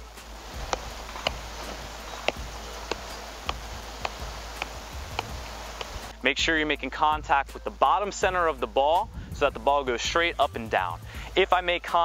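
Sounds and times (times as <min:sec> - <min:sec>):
ball thudding off foot: 0:00.5 - 0:06.1.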